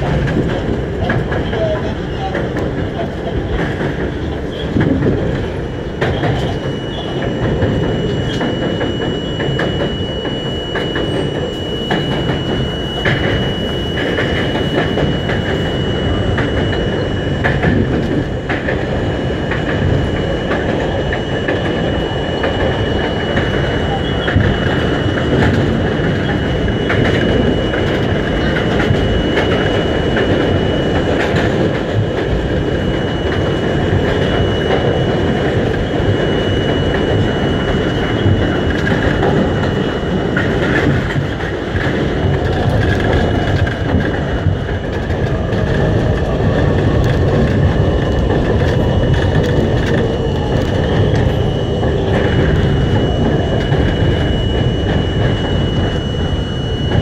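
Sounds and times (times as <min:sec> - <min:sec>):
rumble of wheels on rail: 0:00.0 - 0:57.0
thin high whine: 0:00.0 - 0:57.0.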